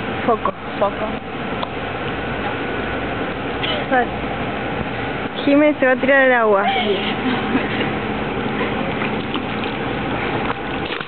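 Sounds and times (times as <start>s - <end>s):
low steady hum: 0.0s - 11.0s
pool water rushing: 0.0s - 11.0s.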